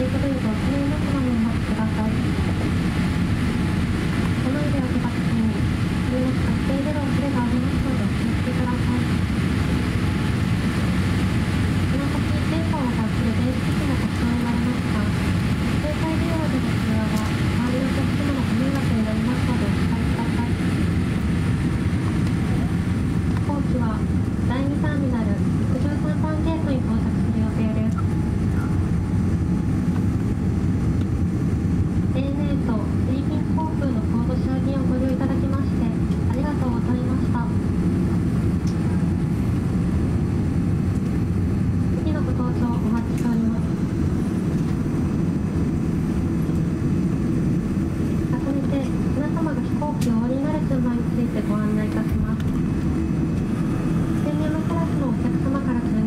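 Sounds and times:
announcement over aircraft pa: 0:00.0 - 0:56.0
low rumble inside aircraft cabin: 0:00.0 - 0:56.0.

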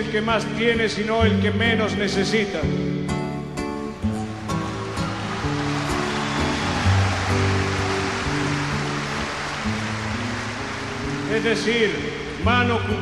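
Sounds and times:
classical guitar playing: 0:02.6 - 0:13.0
audience applause: 0:04.2 - 0:12.5.

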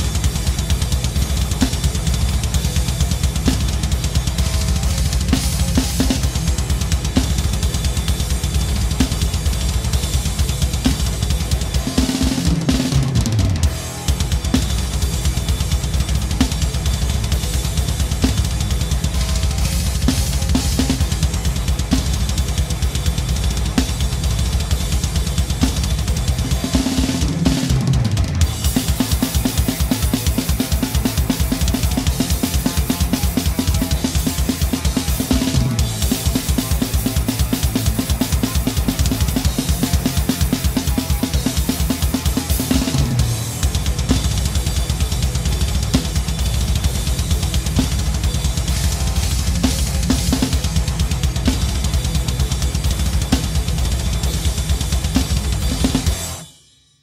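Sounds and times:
fast bass drum strokes: 0:00.0 - 0:56.4
drum kit playing: 0:00.0 - 0:56.6.

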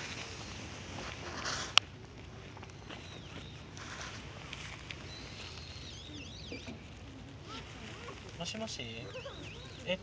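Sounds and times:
bird whistling and warbling: 0:05.1 - 0:08.2, 0:09.0 - 0:10.0.

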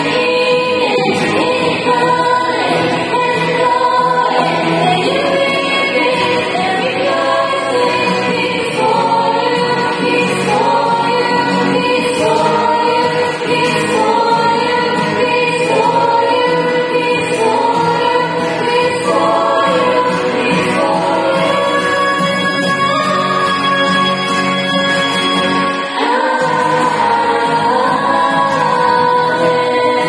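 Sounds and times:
acoustic guitar: 0:00.0 - 0:30.0
women's vocal group singing: 0:00.0 - 0:30.0.

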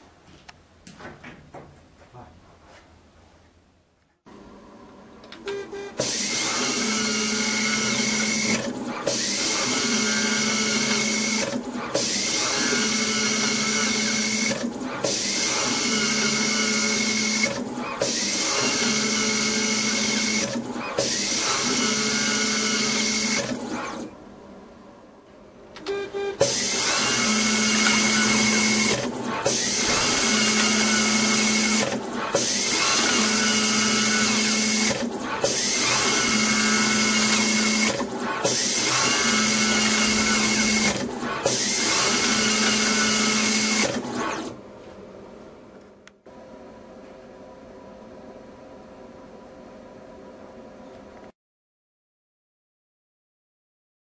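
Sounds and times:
electric screwdriver motor whine: 0:38.6 - 0:44.0.

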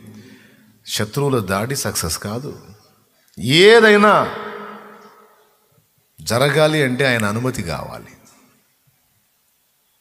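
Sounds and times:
man exclaiming into microphone: 0:03.4 - 0:05.0.

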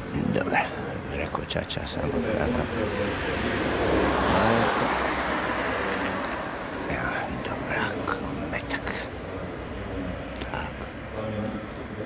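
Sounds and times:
car passing by: 0:02.1 - 0:07.3.

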